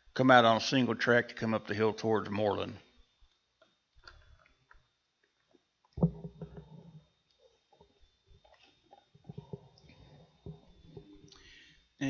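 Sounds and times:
faint high whine: 0.0s - 12.0s
low thud: 6.0s - 7.0s.

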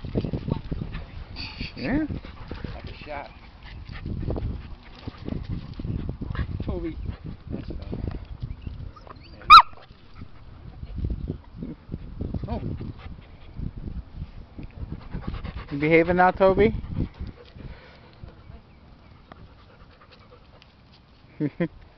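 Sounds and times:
dogs playing: 0.0s - 13.8s, 14.8s - 21.6s.

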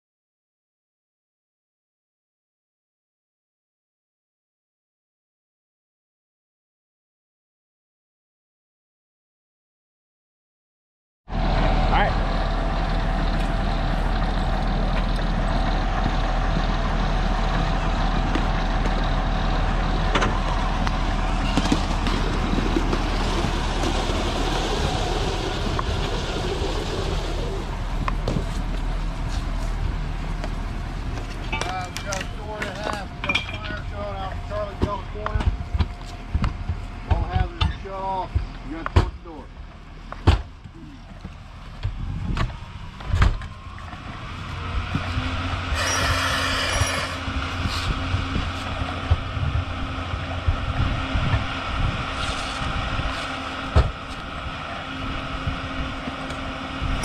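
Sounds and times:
fire engine low hum: 11.3s - 57.0s
voices: 31.4s - 36.0s, 36.8s - 39.5s.

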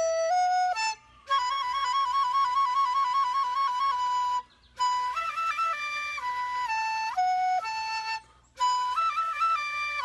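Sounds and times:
bamboo flute trilling: 0.0s - 10.0s.

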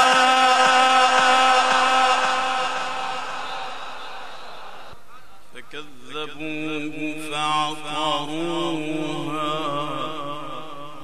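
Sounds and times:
man reciting melodically: 0.0s - 4.3s, 5.4s - 11.0s.

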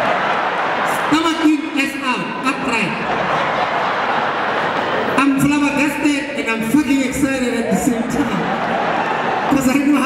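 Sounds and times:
audience laughing and applauding: 0.0s - 10.0s.

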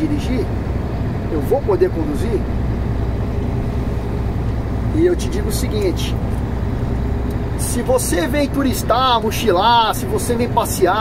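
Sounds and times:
truck engine droning: 0.0s - 11.0s.

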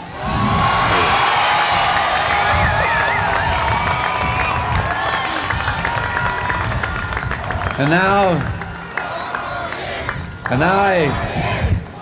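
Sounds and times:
crowd cheering and whooping: 0.0s - 11.7s.

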